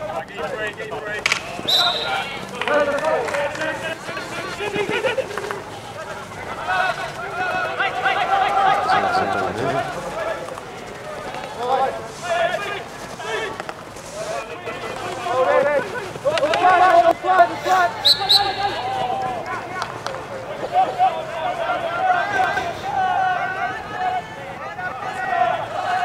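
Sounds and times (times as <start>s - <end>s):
players shouting: 0.0s - 26.0s.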